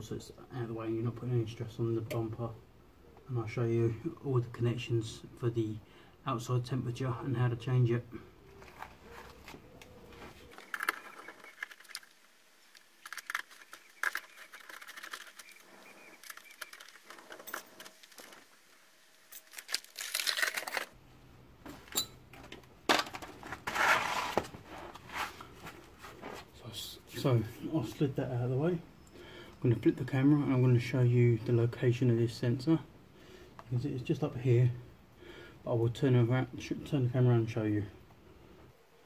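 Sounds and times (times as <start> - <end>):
plastic rattles: 10.5 - 18.6, 19.3 - 20.9, 22.3 - 23.8.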